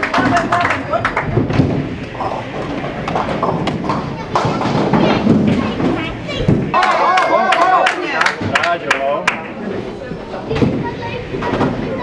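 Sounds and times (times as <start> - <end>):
sharp knocks and clatter: 1.4 - 6.7
murmur of voices: 3.7 - 12.0.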